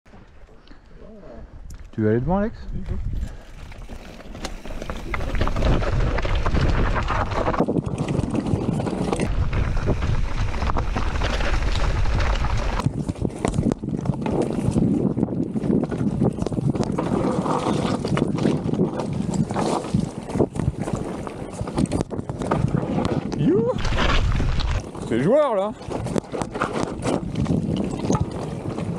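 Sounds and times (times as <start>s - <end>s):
wind buffeting microphone: 1.4s - 28.9s
bike rattling: 2.9s - 28.9s
tyres crunching over stones: 3.4s - 14.7s, 23.8s - 28.9s.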